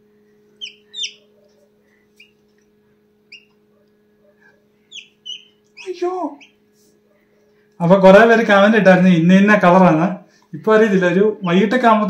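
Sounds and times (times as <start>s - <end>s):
faint low hum: 0.0s - 12.0s
chick peeping inside egg: 0.5s - 6.7s.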